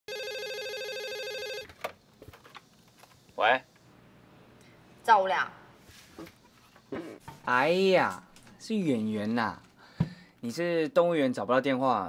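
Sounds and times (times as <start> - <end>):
telephone ringing with warbling trill: 0.1 - 1.7.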